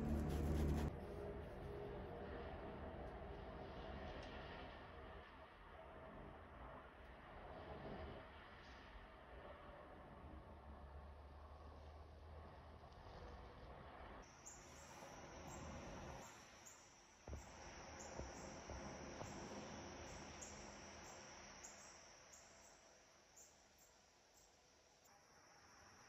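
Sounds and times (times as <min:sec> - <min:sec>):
insects chirping: 0:14.3 - 0:26.0.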